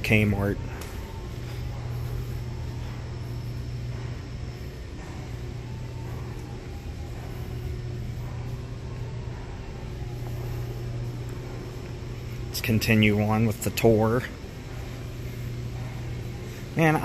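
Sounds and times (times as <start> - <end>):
ventilation system hum and rush: 0.0 - 17.0.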